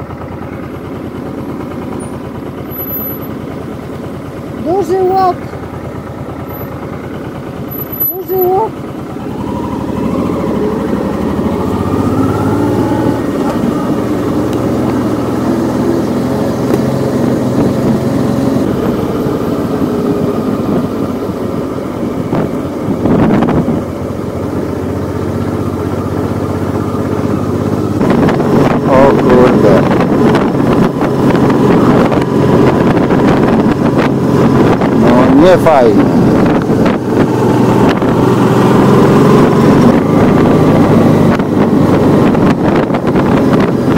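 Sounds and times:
motorcycle engine running: 0.0s - 43.9s
wind buffeting microphone: 17.4s - 24.0s, 27.4s - 43.9s.

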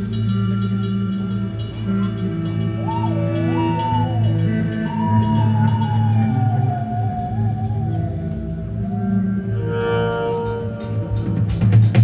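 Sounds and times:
low chord drone: 0.0s - 12.0s.

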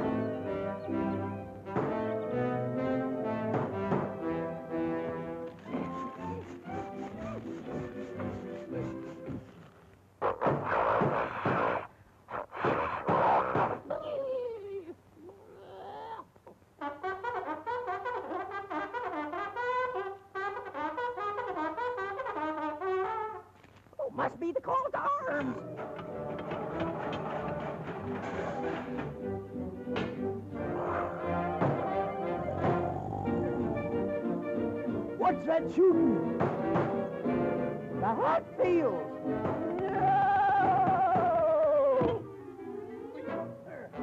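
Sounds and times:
orchestral cartoon music with brass: 0.0s - 9.4s, 16.8s - 23.5s, 25.6s - 40.3s.

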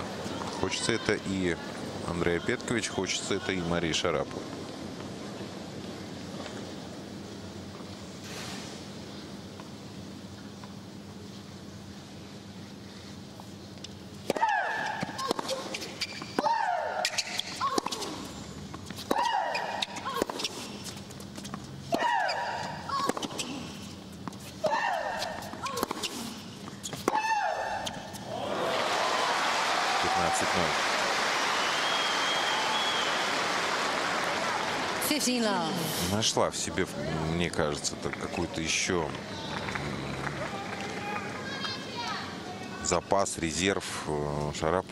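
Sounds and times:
racket hitting ball: 14.3s - 18.2s, 21.9s - 23.6s, 24.6s - 26.4s
woman shrieking: 16.4s - 18.0s, 21.9s - 23.2s, 24.6s - 25.9s, 27.1s - 27.9s
crowd applauding: 28.4s - 35.2s, 39.4s - 41.1s.

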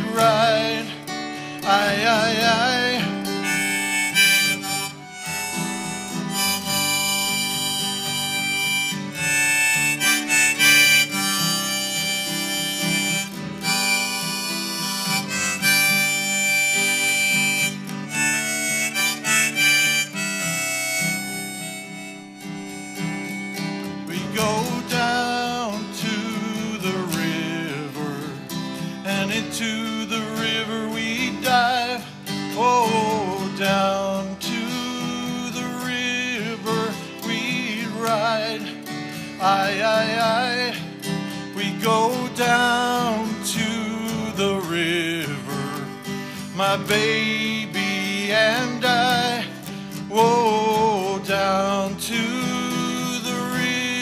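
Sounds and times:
strummed acoustic guitar: 0.0s - 54.0s
harmonica playing: 1.4s - 26.4s, 34.7s - 54.0s.

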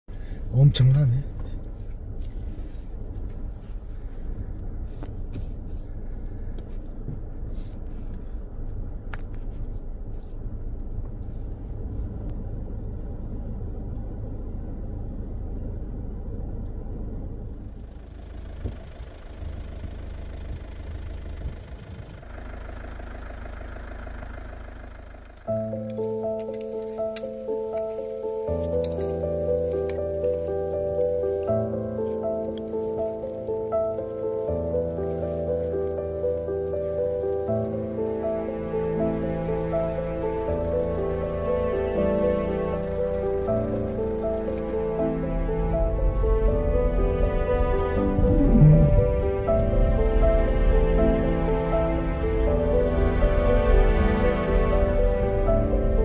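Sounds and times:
car road and engine rumble: 0.0s - 56.0s
background music: 25.5s - 56.0s.

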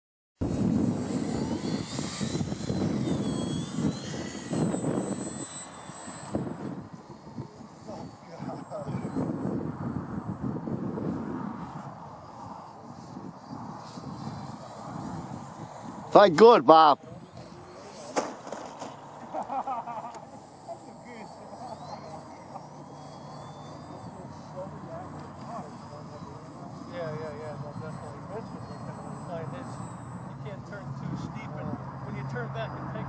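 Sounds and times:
wind rumble on microphone: 0.4s - 16.3s
model plane motor whining: 0.4s - 33.0s.

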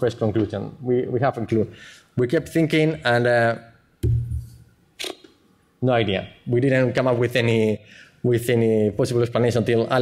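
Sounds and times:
man speaking into microphone: 5.8s - 10.0s.

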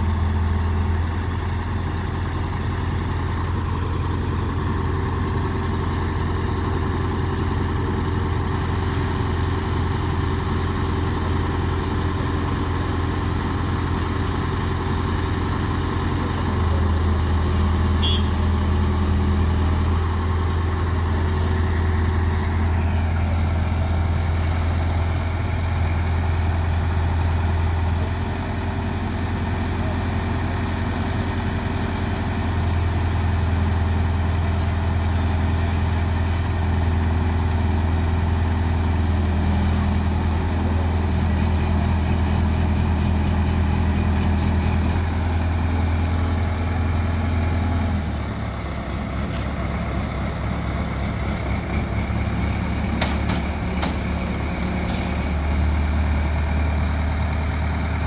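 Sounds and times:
diesel crane engine droning: 0.0s - 58.0s.

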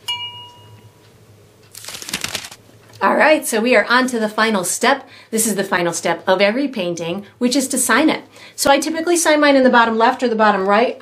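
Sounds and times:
paintbrushes rattling in container: 1.7s - 2.6s.

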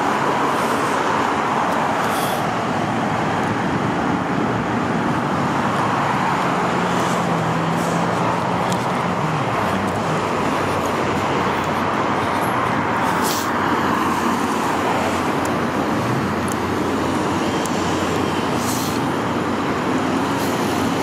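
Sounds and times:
freeway traffic noise: 0.0s - 21.0s.

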